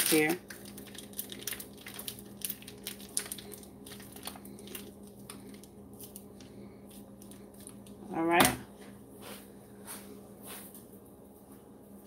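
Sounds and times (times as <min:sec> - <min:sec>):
plastic piping bag crinkling: 0:00.0 - 0:08.0
steady low hum: 0:00.0 - 0:12.0.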